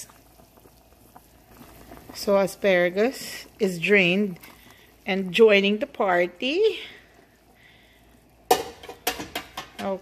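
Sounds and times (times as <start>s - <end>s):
broth bubbling in pan: 0.0s - 10.0s
kitchenware clattering against pan: 8.5s - 10.0s.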